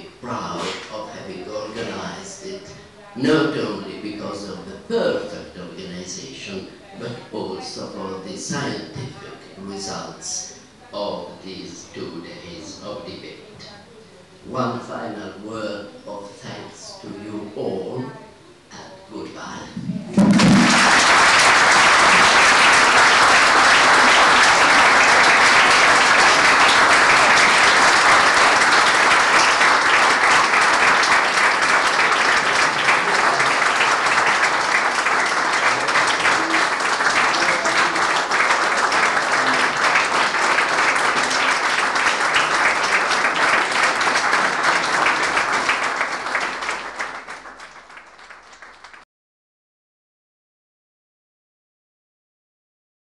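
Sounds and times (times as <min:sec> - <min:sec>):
audience applauding: 0:20.1 - 0:49.0.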